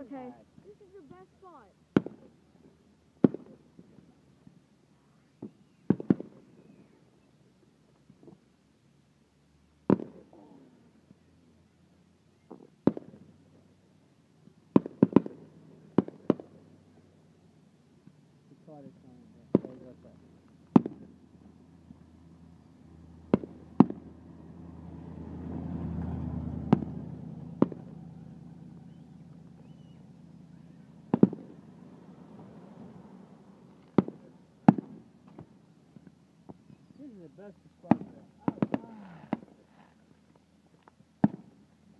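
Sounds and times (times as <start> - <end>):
fireworks bangs: 1.9 - 4.1, 5.4 - 6.9, 9.8 - 10.4, 12.4 - 13.3, 14.7 - 16.7, 19.4 - 20.1, 20.7 - 21.2, 23.3 - 24.1, 26.7 - 28.1, 28.8 - 31.7, 33.7 - 37.0, 37.8 - 39.8, 41.2 - 41.6.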